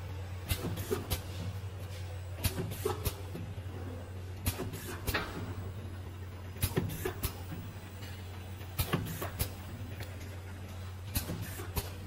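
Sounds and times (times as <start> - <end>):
motor and conveyor hum: 0.0 - 12.0
machine clacks and hisses: 0.4 - 3.5, 4.3 - 5.7, 6.5 - 12.0.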